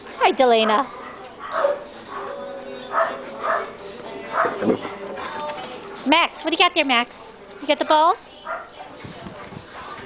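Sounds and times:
dogs barking: 0.5s - 4.9s, 8.4s - 9.0s.

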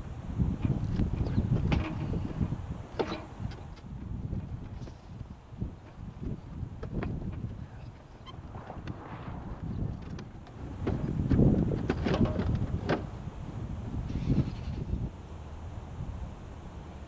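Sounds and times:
wind rumbling on microphone: 0.0s - 17.0s.

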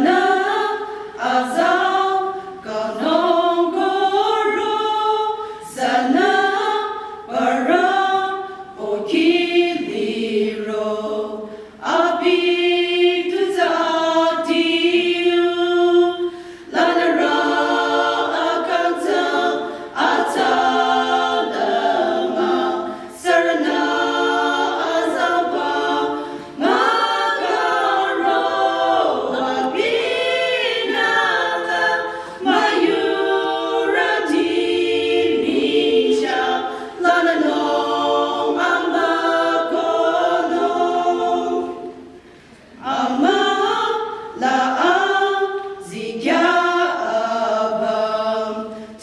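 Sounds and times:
women's choir singing a cappella: 0.0s - 49.0s.

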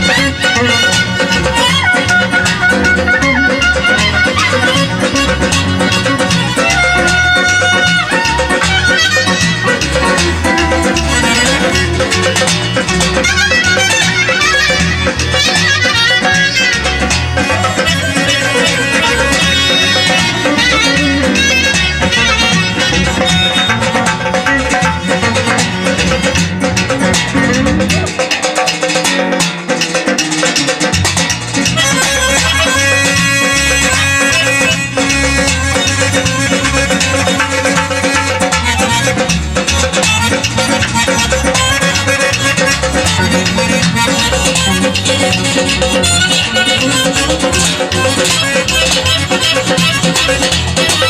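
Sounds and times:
clarinet dance tune: 0.0s - 28.7s, 29.9s - 51.0s
frame drum beat: 0.0s - 51.0s.

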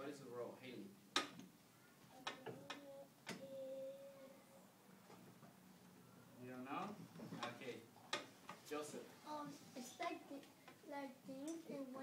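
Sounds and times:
children's quiet voices: 1.6s - 5.2s, 9.2s - 12.0s.

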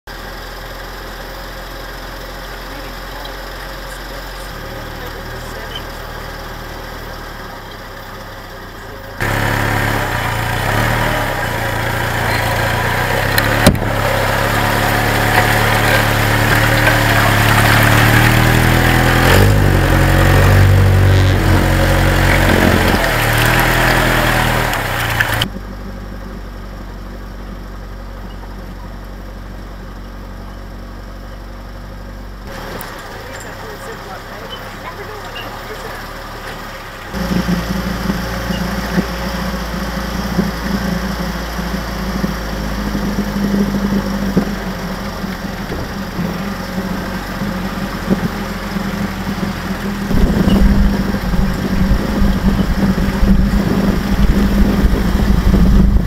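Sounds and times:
jeep engine running: 0.0s - 56.0s
water splashing under tyre: 9.2s - 25.5s.

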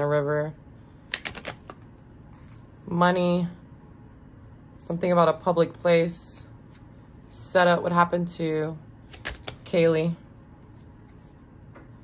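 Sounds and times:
cards clicking: 1.1s - 1.9s, 9.1s - 9.6s.

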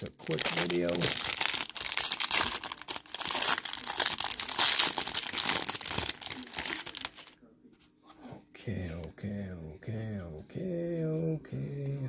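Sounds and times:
plastic wrapper crinkling: 0.0s - 7.4s.

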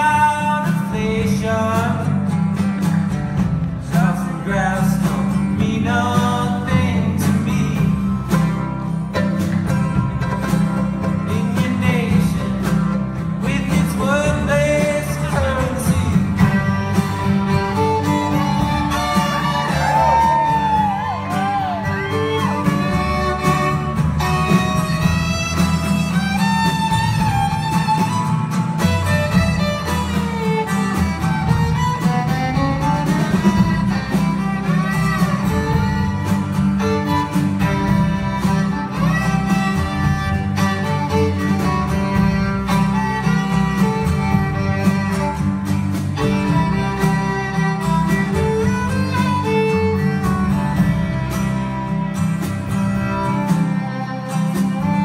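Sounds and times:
low bass line: 0.0s - 55.0s
strummed acoustic guitar: 0.0s - 55.0s
bowed violin melody: 16.0s - 55.0s.

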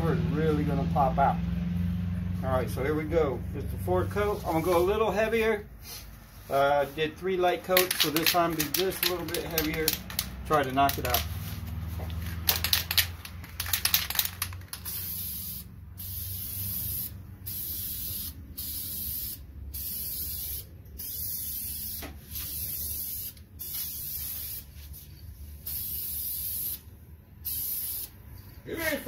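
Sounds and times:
rapid loud clicks: 7.7s - 11.3s, 12.4s - 14.8s
spray paint can hissing: 7.7s - 28.4s.

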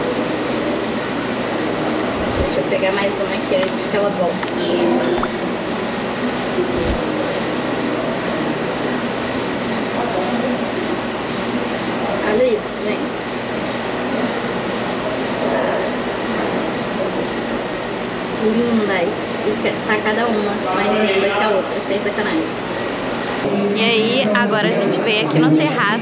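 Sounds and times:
steady hum: 1.8s - 7.7s.

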